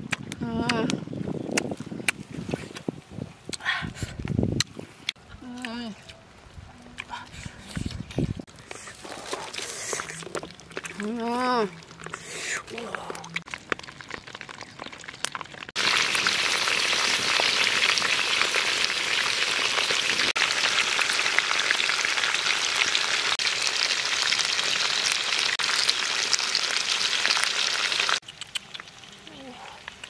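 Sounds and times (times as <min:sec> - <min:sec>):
stew boiling with crackling hiss: 0:07.1 - 0:30.0
wood fire crackling: 0:08.4 - 0:30.0.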